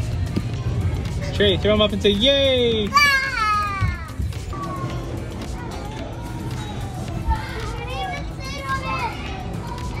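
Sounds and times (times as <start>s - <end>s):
background music with low bass: 0.0s - 10.0s
children playing and calling: 2.9s - 10.0s.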